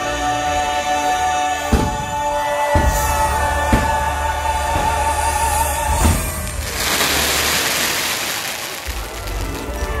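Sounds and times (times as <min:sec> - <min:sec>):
pyrotechnics rushing hiss: 0:05.9 - 0:09.9.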